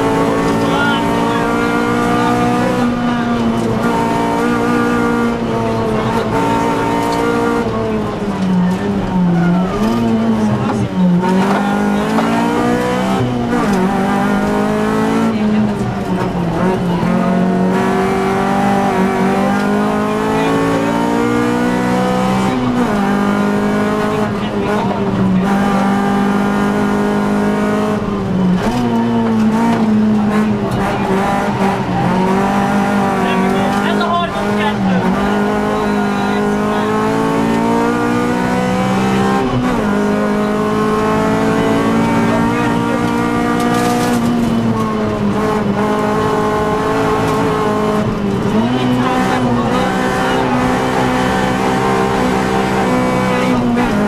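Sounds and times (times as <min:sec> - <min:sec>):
rally car engine revving: 0:00.0 - 0:54.0.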